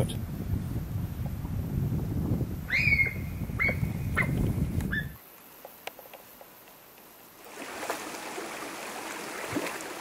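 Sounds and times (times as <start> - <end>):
deer whistling: 2.7 - 5.2.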